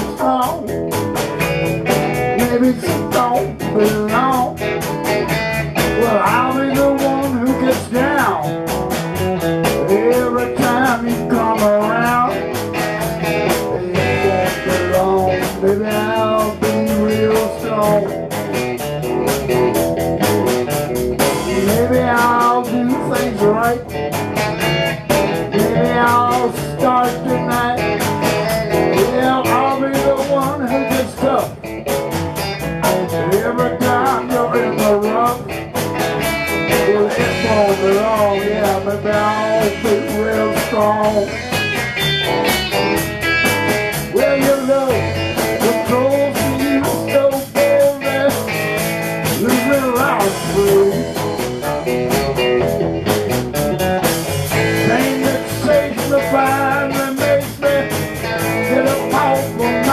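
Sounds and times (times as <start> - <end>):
blues rock band playing: 0.0 - 59.9
lead guitar bending notes: 0.0 - 59.9.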